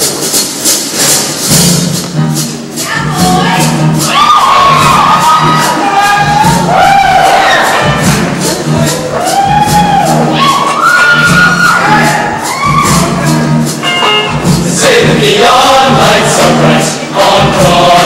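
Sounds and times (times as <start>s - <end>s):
band playing up-tempo show tune: 0.0s - 18.0s
audience cheering: 4.1s - 13.3s.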